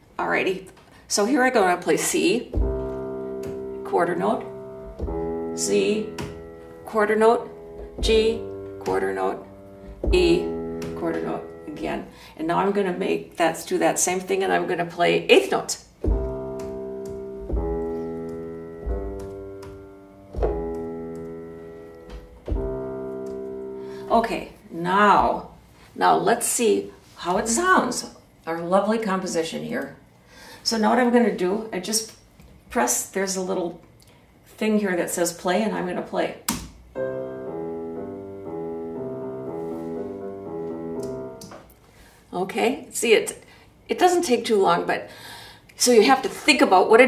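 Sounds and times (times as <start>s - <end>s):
digital piano single notes: 2.4s - 13.3s, 16.0s - 25.4s, 37.0s - 41.8s.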